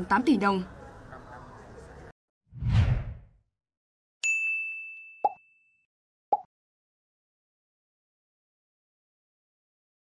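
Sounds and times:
whoosh: 2.6 - 3.4
bright bell-like ding: 4.2 - 5.9.

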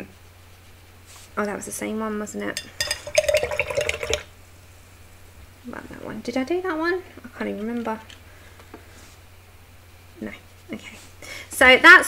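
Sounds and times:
brush clinking against jar: 2.6 - 3.8.

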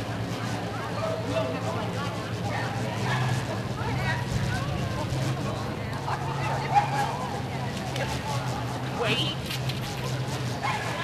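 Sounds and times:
dog barking with high yips: 10.6 - 11.0.

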